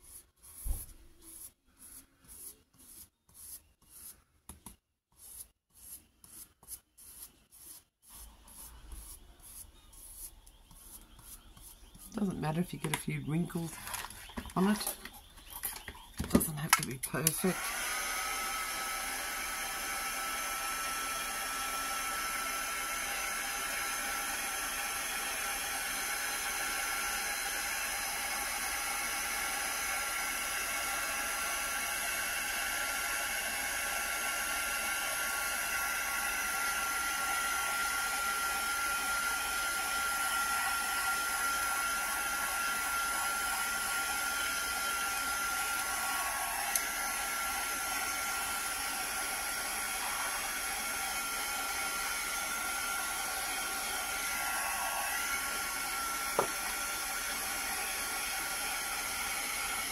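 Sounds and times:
heat gun blowing hiss: 40.8s - 59.9s.

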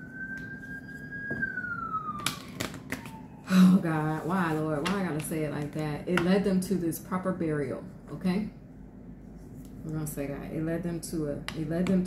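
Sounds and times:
siren wailing: 0.0s - 4.6s.

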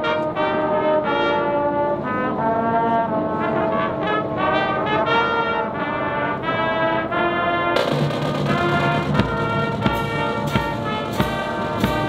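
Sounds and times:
brass band sustained chords: 0.0s - 12.0s.

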